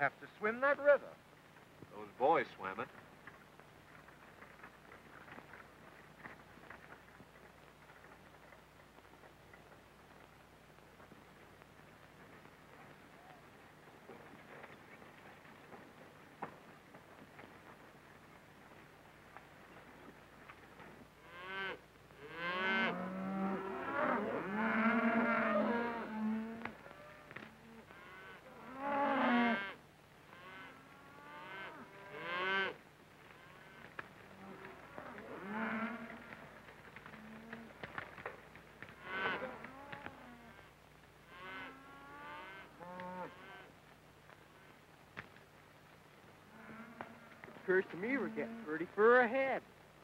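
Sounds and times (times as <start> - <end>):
cattle mooing: 21.3 - 32.8, 33.4 - 36.4, 39.0 - 40.7.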